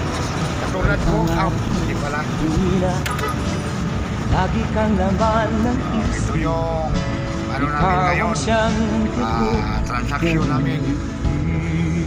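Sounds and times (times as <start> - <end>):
vehicle engine and road noise: 0.0 - 12.0.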